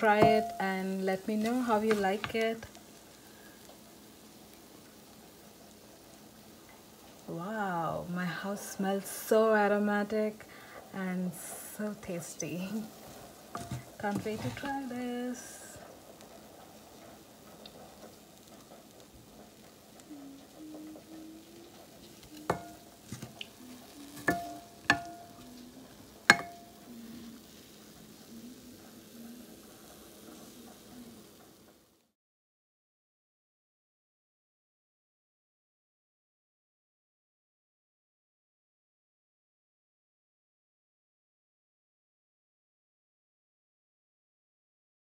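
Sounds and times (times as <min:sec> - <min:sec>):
wooden spatula stirring in pan: 0:00.0 - 0:03.8, 0:11.3 - 0:31.7
spatula knocking against pan: 0:13.6 - 0:14.4, 0:22.4 - 0:23.4, 0:24.2 - 0:25.4, 0:26.3 - 0:26.8.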